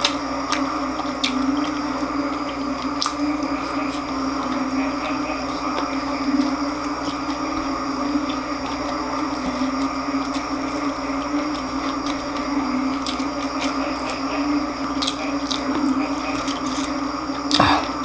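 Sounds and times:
chewing crispy food: 0.0 - 18.0
sharp crackles of fried pieces: 0.0 - 18.0.

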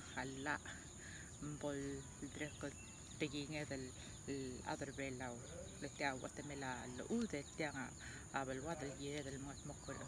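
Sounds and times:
woman speaking: 0.0 - 0.8, 1.4 - 10.0.

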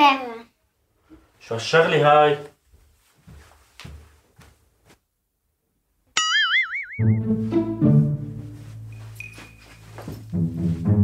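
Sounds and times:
twanging boing effect: 6.2 - 7.3
comedic brass music: 7.0 - 8.6.

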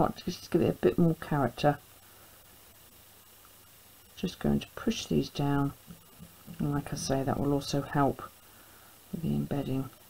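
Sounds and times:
faint room tone hiss: 0.0 - 10.0.

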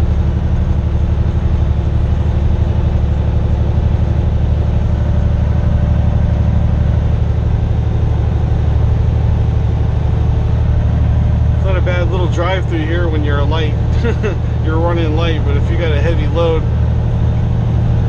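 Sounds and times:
road noise: 0.0 - 18.0
truck diesel engine under load: 0.0 - 18.0.

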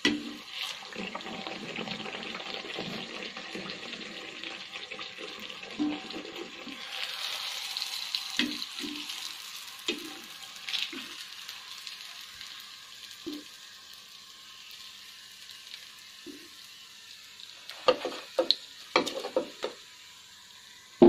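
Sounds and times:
hot oil sizzling: 0.0 - 21.0.

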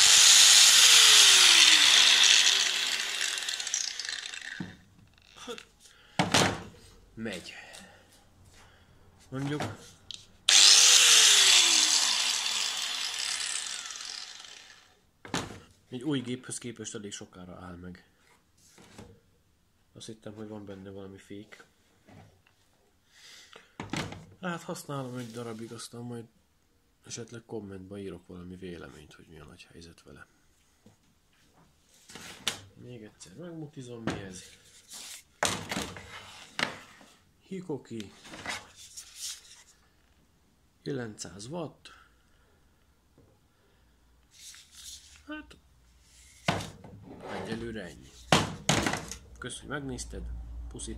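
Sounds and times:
angle grinder whine coasting down: 0.0 - 4.8, 10.5 - 14.9.

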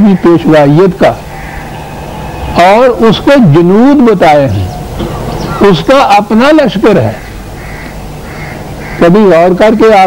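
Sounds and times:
man speaking: 0.0 - 1.2, 2.5 - 4.9, 5.5 - 7.2, 9.0 - 10.0
low background hum: 0.0 - 9.8.

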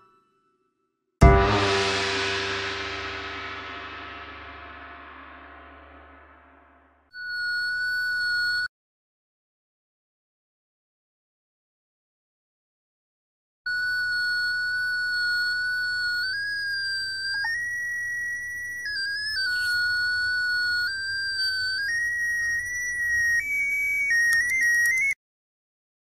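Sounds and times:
electronic tone changing pitch: 1.2 - 6.6, 15.3 - 25.2.

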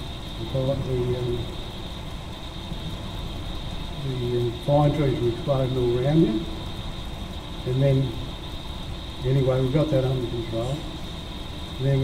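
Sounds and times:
faint high-pitched whine: 0.0 - 12.0.

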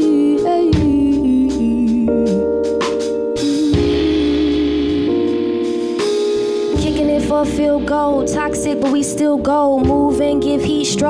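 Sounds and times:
bass guitar: 0.0 - 11.0
sustained keyboard chords: 0.0 - 11.0.

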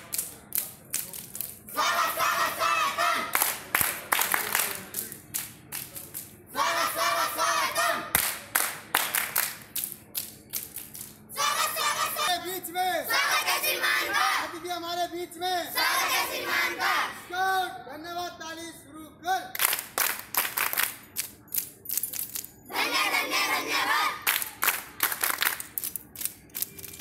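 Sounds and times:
children clapping in rhythm: 3.3 - 6.3, 8.1 - 10.6, 19.6 - 21.3, 24.2 - 26.0.

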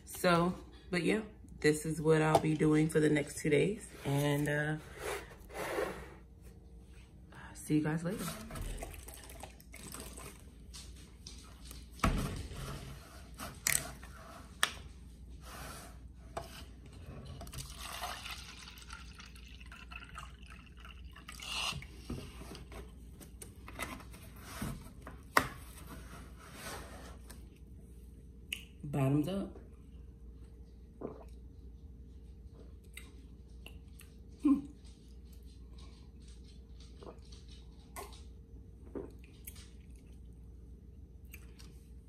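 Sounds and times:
juice pouring into a cup: 8.7 - 10.4, 17.4 - 22.0.

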